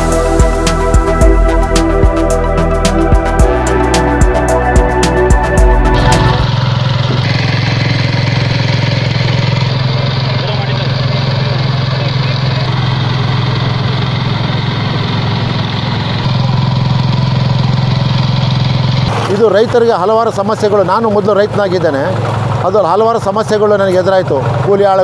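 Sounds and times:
cultivator engine running: 5.6s - 25.0s.

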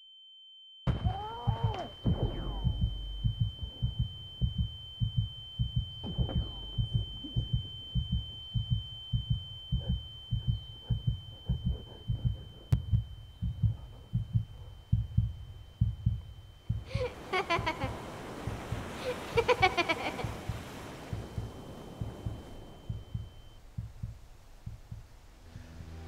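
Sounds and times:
high-pitched ringing tone: 0.0s - 24.8s
heartbeat low thumps: 0.9s - 26.0s.

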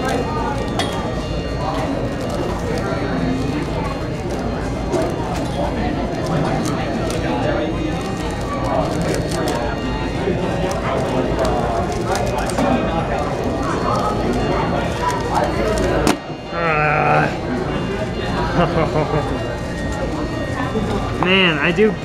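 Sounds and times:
many people talking: 0.0s - 22.0s.

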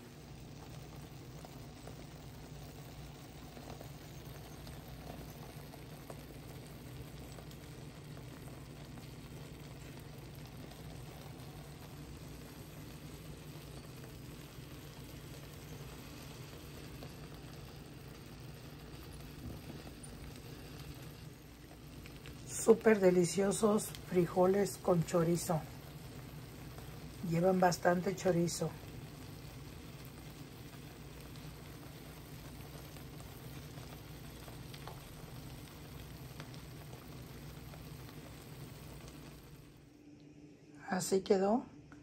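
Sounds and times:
low hum: 0.0s - 29.3s, 38.4s - 42.0s
food bubbling and sizzling in pan: 0.0s - 40.4s.

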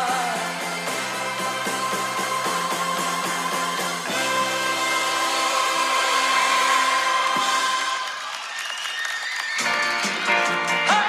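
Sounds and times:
pop-rock music on radio: 0.0s - 8.1s, 9.6s - 11.0s.

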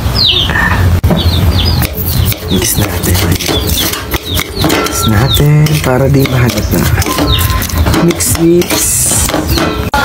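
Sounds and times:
small birds chirping: 0.0s - 9.9s.

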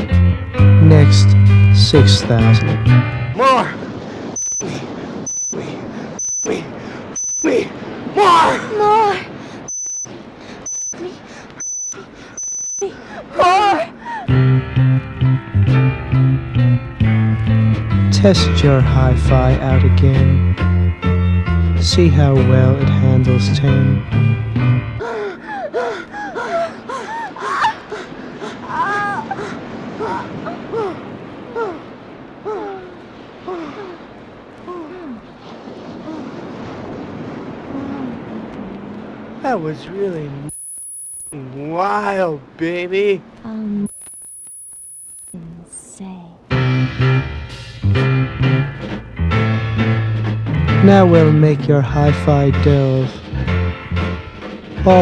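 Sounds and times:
short test tone beeps: 4.4s - 4.7s, 5.3s - 5.6s, 6.2s - 6.5s, 7.2s - 7.5s, 9.7s - 10.1s, 10.7s - 11.0s, 11.6s - 12.8s, 40.5s - 41.4s, 43.8s - 45.4s
woman gasping and moaning: 12.8s - 14.3s, 25.0s - 31.8s, 32.4s - 34.1s.

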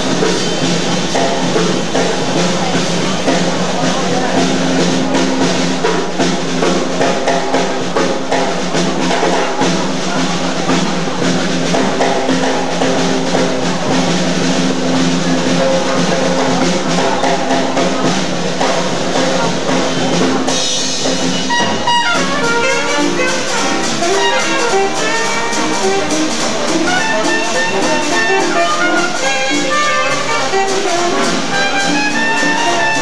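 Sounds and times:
jazz band playing: 0.0s - 33.0s
snare and bass drum strokes: 0.0s - 33.0s
saxophone and horns: 19.1s - 33.0s.

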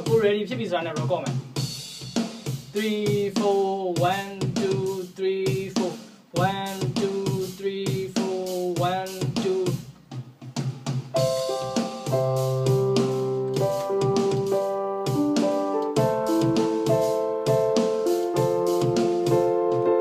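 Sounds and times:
programmed drum beat: 0.0s - 20.0s
electric piano chords: 11.2s - 20.0s
sliding synth melody: 11.2s - 20.0s.

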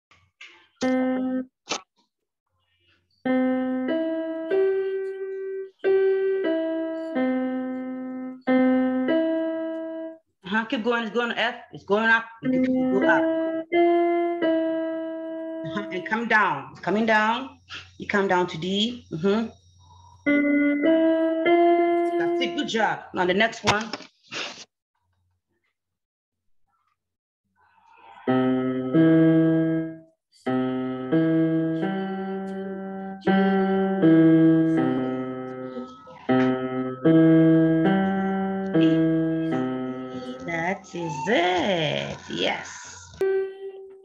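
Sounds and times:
keyboard piano notes: 0.4s - 1.6s, 3.2s - 10.3s, 12.4s - 17.4s, 20.1s - 23.0s, 28.0s - 42.3s, 43.0s - 44.0s.

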